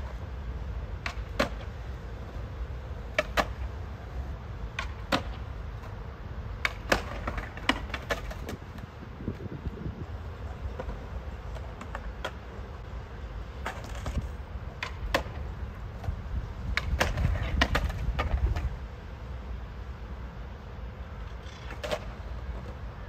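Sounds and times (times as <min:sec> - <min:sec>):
skateboard clacks: 0:00.0 - 0:19.1, 0:21.2 - 0:23.0
skateboard wheels rolling on concrete: 0:00.0 - 0:23.0.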